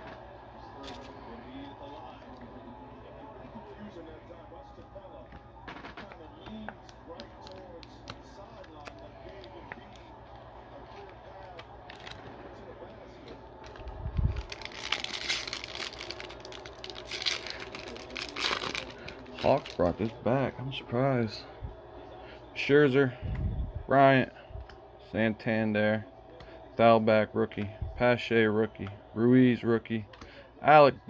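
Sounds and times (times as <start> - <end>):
wrapper being torn and crinkled: 11.5 - 12.2, 13.6 - 20.2.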